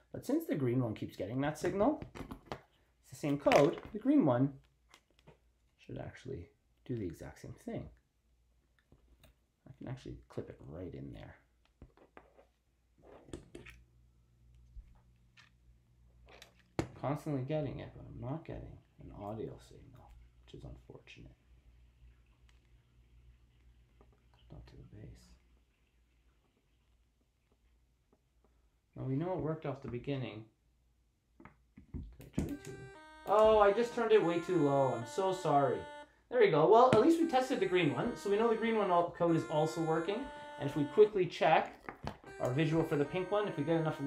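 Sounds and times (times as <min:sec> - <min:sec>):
faint electronic tune: 0:32.4 - 0:41.6, 0:42.3 - 0:44.0.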